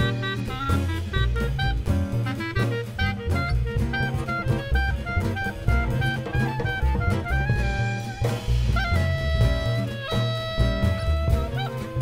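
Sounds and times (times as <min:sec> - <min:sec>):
clarinet lead: 0:00.0 - 0:12.0
gypsy jazz band playing: 0:00.0 - 0:12.0.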